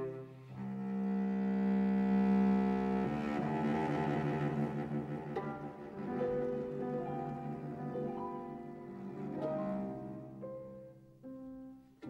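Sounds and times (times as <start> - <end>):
cello long bowed note: 0.0 - 11.7.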